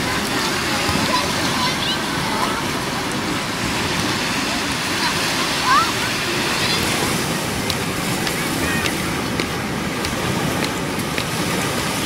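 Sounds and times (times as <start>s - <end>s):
small waves breaking on sand: 0.0s - 12.0s.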